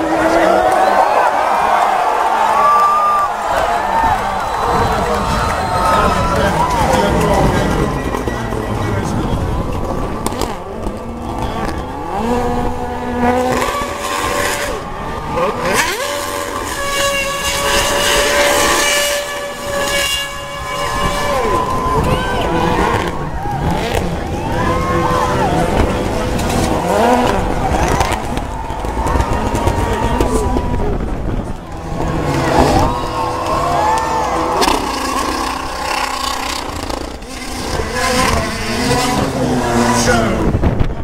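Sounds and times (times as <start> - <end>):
racing car engine revving: 0.0 - 41.0.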